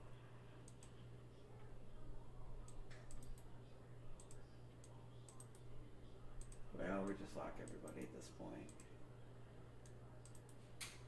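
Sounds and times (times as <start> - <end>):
faint murmur of voice: 0.0 - 7.5
low steady hum: 0.0 - 11.0
computer mouse clicks: 0.6 - 1.0, 2.6 - 3.5, 4.2 - 5.7, 6.4 - 6.7, 7.6 - 8.1, 8.7 - 8.9, 9.8 - 11.0.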